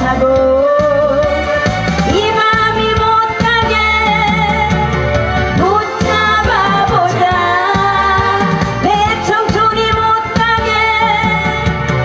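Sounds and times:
woman singing with vibrato: 0.0s - 1.4s, 2.1s - 11.8s
instrumental accompaniment with beat: 0.0s - 12.0s.

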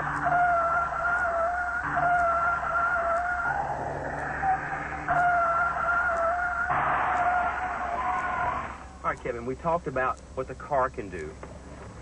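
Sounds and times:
tyres squealing: 0.0s - 9.1s.

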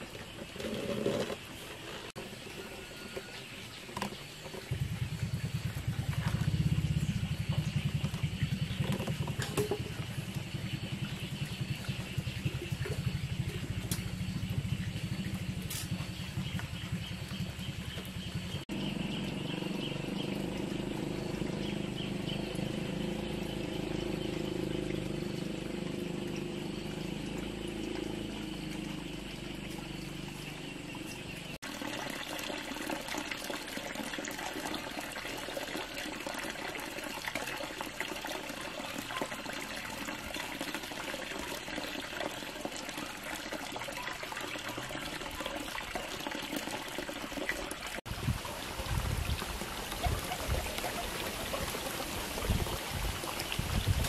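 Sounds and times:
small engine running: 4.0s - 33.9s.

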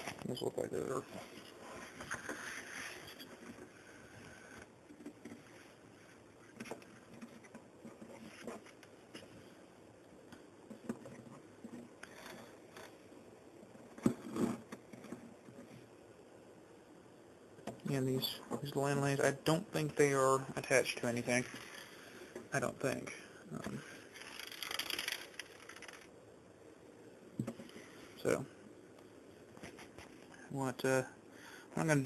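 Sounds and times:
faint handling noises: 0.0s - 16.0s, 27.4s - 30.4s.

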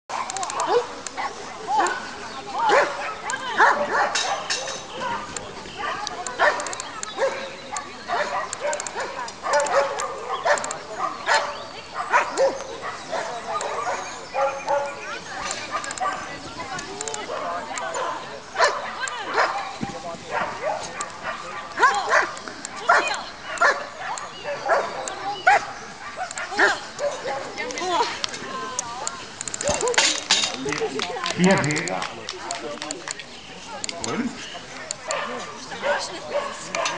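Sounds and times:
dog barking: 0.5s - 0.9s, 2.6s - 4.8s, 6.4s - 15.0s, 15.7s - 16.3s, 17.3s - 19.7s, 20.3s - 27.5s, 34.9s - 36.9s.

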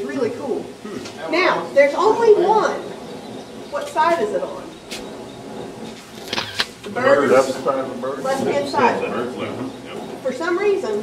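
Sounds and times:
faint murmuring voices: 0.0s - 11.0s
room noise: 0.0s - 11.0s.

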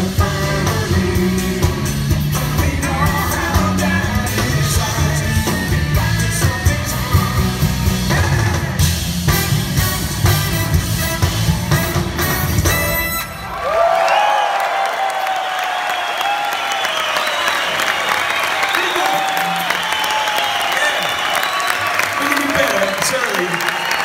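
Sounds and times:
rock band playing live: 0.0s - 13.5s
audience applause and cheering: 10.2s - 24.0s
audience shouts: 13.4s - 24.0s.

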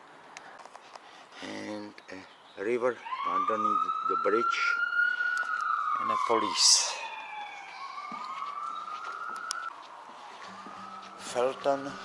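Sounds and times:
police siren wailing: 3.0s - 12.0s.

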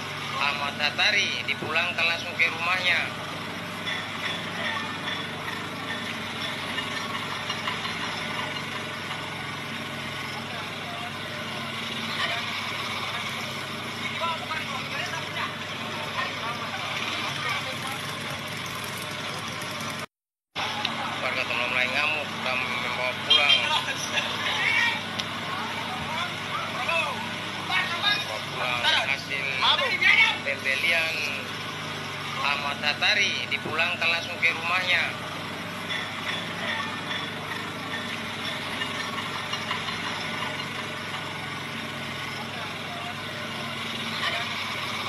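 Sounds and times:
crowd talking and calling out: 0.0s - 45.0s
motorcycle engines running: 0.0s - 45.0s.

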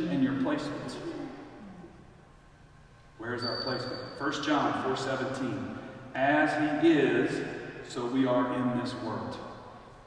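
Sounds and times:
man speaking in reverberant hall: 0.0s - 10.0s.

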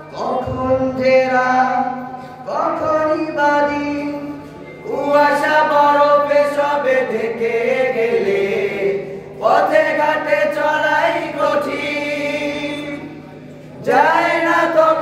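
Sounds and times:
male voices singing through microphones: 0.0s - 15.0s.

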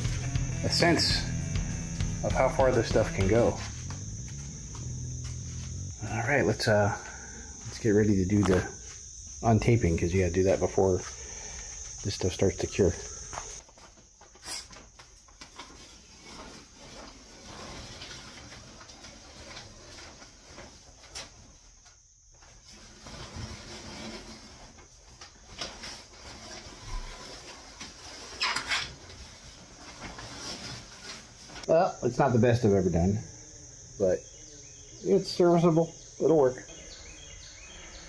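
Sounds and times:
crickets chirring: 0.0s - 38.0s.

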